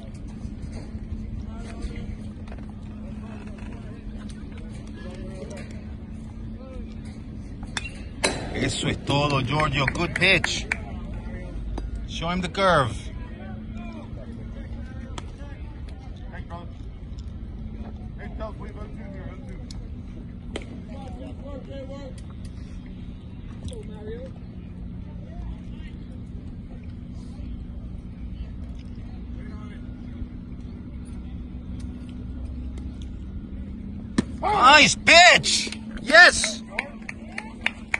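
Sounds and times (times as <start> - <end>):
distant voices: 0.0 - 37.9
steady low hum: 0.0 - 37.9.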